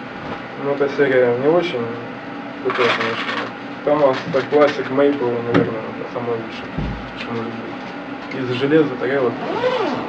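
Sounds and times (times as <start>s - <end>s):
man speaking: 2.6s - 9.4s.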